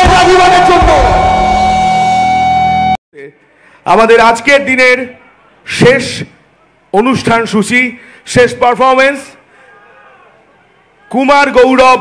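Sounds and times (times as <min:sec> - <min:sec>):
low hit: 0:00.0 - 0:03.0
rock band sustained chord: 0:00.0 - 0:03.0.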